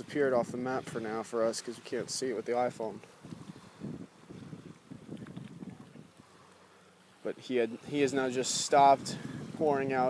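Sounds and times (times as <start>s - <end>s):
wind buffeting microphone: 0.0s - 6.4s, 7.7s - 10.0s.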